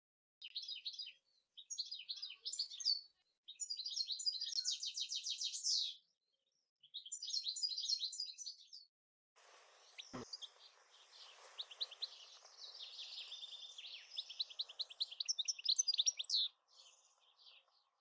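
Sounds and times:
small birds chirping: 0:00.4 - 0:18.0
steady outdoor hiss: 0:09.4 - 0:15.7.

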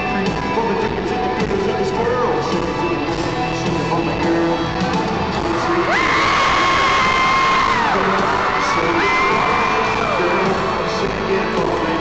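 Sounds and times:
live country-rock band: 0:00.0 - 0:12.0
crowd cheering and whooping: 0:05.3 - 0:12.0.

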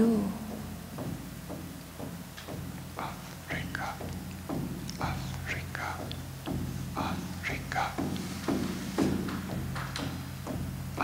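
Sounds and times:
low steady hum: 0:00.0 - 0:11.0
person whispering into microphone: 0:03.0 - 0:04.2, 0:04.9 - 0:06.2, 0:06.9 - 0:09.0.

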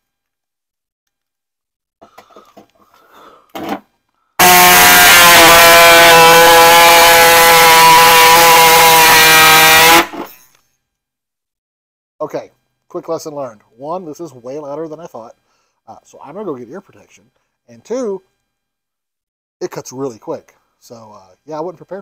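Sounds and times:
air saw cutting sheet metal: 0:04.4 - 0:10.4.

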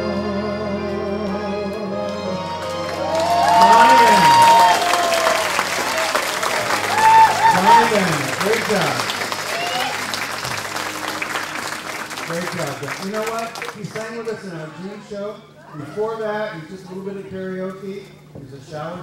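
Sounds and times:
audience applause: 0:02.5 - 0:14.4
crowd voices: 0:02.5 - 0:17.4.

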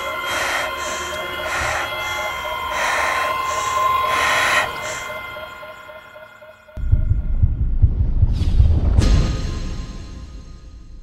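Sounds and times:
deep pulsing rumble: 0:06.8 - 0:09.2.

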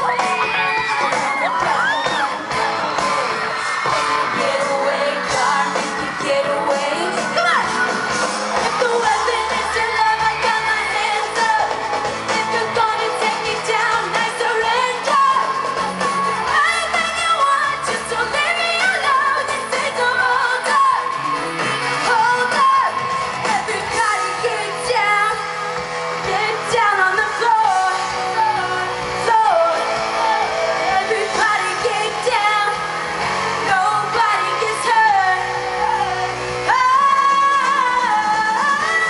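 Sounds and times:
live pop-rock band: 0:00.0 - 0:39.0
woman singing: 0:04.3 - 0:08.0, 0:08.6 - 0:21.2, 0:22.0 - 0:25.6, 0:26.2 - 0:39.0.

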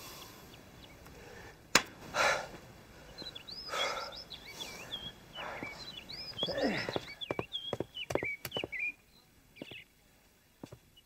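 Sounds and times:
heavy breathing: 0:00.0 - 0:07.2
songbirds chirping: 0:00.0 - 0:11.0
footsteps on stone steps: 0:02.5 - 0:03.4, 0:05.4 - 0:08.9, 0:09.6 - 0:09.9, 0:10.6 - 0:10.9.

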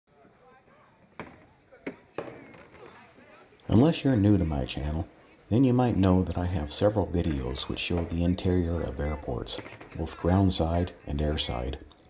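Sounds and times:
faint background voices: 0:00.1 - 0:12.0.

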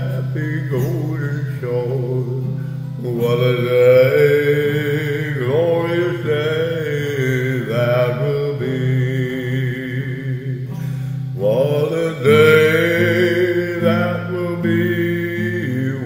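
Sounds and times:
man singing a gospel hymn: 0:00.0 - 0:16.0.

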